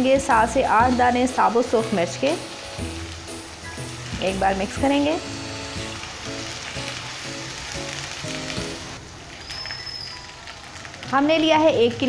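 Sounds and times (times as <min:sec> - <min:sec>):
soft background music: 0:00.0 - 0:09.0, 0:10.3 - 0:12.0
onions sizzling in hot oil: 0:00.0 - 0:12.0.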